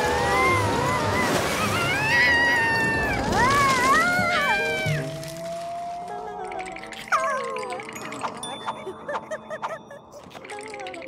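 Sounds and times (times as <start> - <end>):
background music: 3.2 - 11.0.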